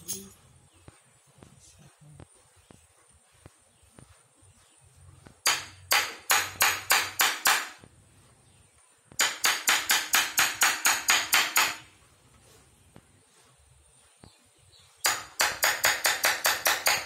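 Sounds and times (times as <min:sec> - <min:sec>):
hammer tapping metal punch: 0:09.2 - 0:11.8, 0:15.0 - 0:17.0.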